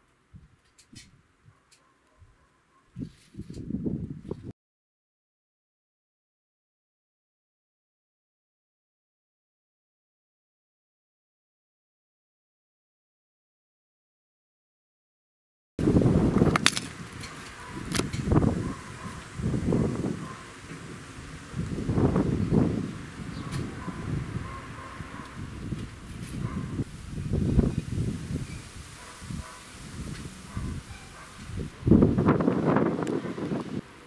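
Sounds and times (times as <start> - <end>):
wind buffeting microphone: 3.0 - 4.5, 15.8 - 34.0
sharp cracks: 16.4 - 18.3.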